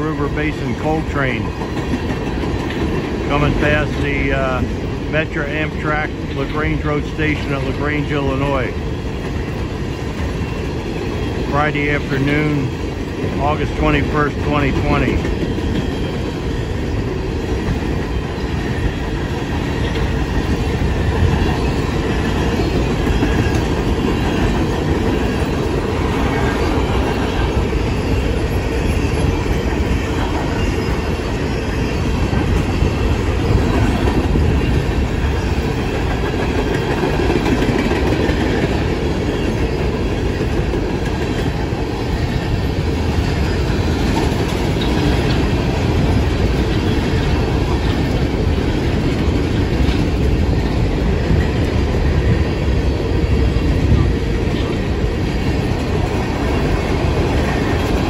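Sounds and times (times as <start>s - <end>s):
empty train cars rattling: 0.0s - 58.0s
steel wheels rumbling on rail: 0.0s - 58.0s
wheels clacking over rail joints: 0.0s - 58.0s.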